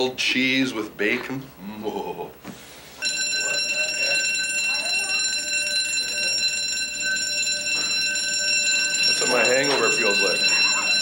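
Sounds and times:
piercing electronic alarm tone: 3.0 - 11.0.

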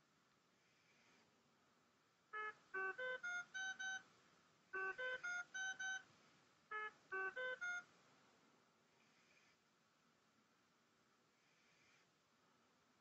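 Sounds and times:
electronic beep tune: 2.4 - 4.0, 4.8 - 6.0, 6.7 - 7.8.

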